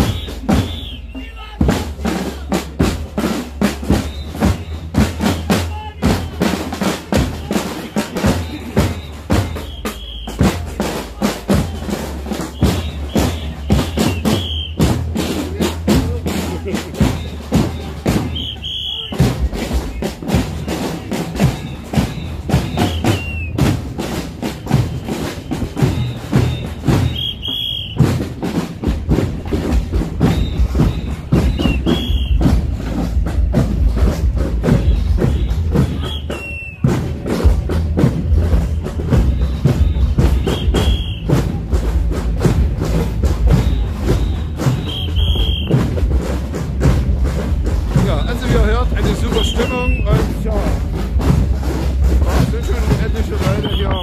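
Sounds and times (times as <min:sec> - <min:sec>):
marching hand drums: 0:00.0 - 0:54.0.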